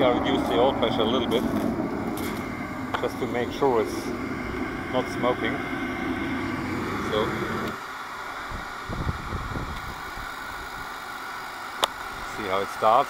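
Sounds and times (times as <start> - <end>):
oil burner running: 0.0 - 13.0
quiet steady hum: 0.0 - 13.0.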